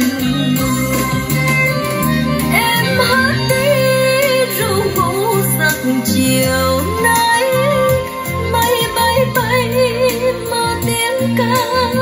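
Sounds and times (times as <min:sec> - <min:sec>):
pitch-bending melody line: 0:00.0 - 0:12.0
recorded song through speaker: 0:00.0 - 0:12.0.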